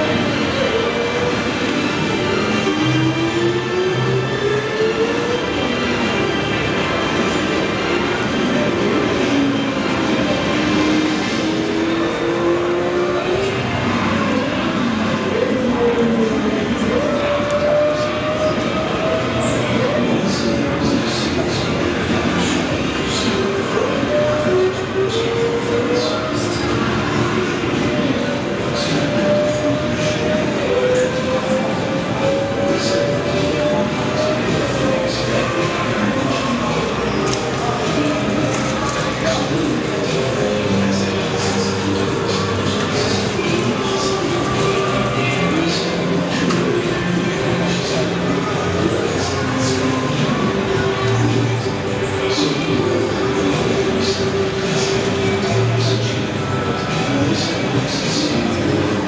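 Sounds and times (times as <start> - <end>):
background music gliding tones: 0.0 - 59.0
exhibition hall din: 0.0 - 59.0.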